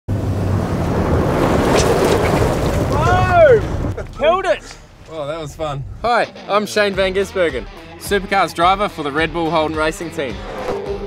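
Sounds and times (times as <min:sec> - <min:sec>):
diesel truck engine: 0:00.1 - 0:06.1
wind noise: 0:00.2 - 0:04.2
tyres on gravel: 0:00.4 - 0:05.7.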